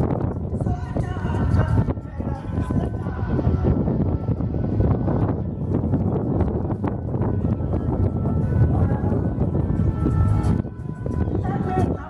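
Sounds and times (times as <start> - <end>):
background music: 0.0 - 12.0
wind rumbling on microphone: 0.0 - 12.0.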